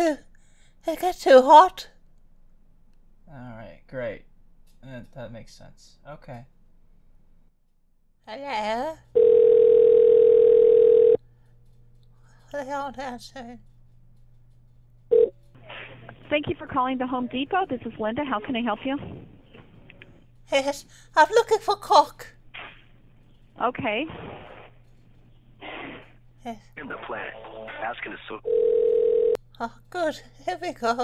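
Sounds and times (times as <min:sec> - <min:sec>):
faint phone line hum: 0:09.1 - 0:11.6, 0:12.6 - 0:22.0, 0:26.8 - 0:30.2
telephone ringing tone: 0:09.2 - 0:11.2, 0:15.1 - 0:15.3, 0:28.4 - 0:29.4
telephone line hiss: 0:26.9 - 0:29.4.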